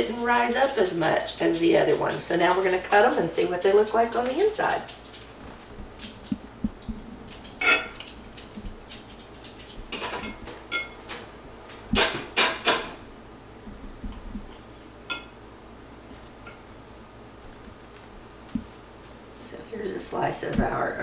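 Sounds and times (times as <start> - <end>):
metal knife clinking on glass: 7.6 - 8.0.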